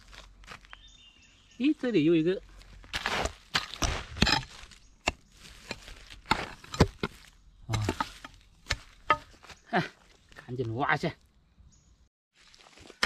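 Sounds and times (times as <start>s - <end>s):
axe chopping: 2.9s - 9.4s.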